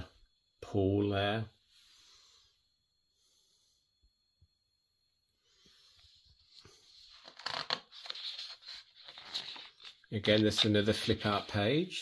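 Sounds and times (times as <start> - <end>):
book pages rustling and turning: 6.3 - 11.8.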